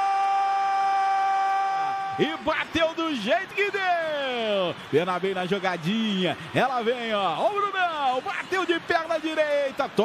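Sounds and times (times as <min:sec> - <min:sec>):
man shouting goal: 0:00.0 - 0:04.6.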